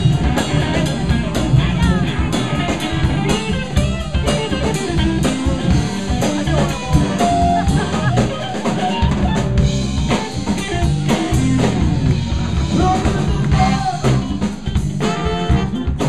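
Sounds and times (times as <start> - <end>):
drum kit groove: 0.0 - 16.0
electric guitar: 0.0 - 16.0
low bass line: 0.0 - 16.0.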